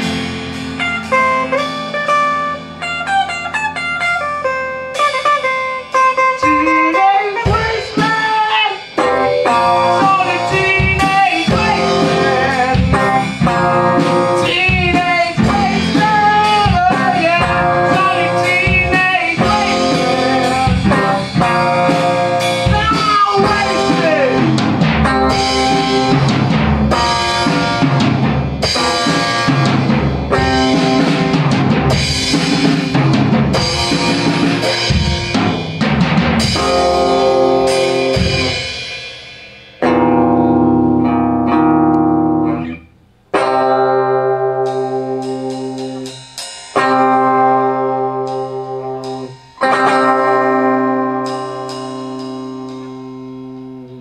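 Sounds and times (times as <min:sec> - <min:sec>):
band striking long chords: 0:00.0 - 0:06.3, 0:07.4 - 0:42.8
drum beat: 0:00.0 - 0:53.6
electric guitar: 0:00.0 - 0:54.0.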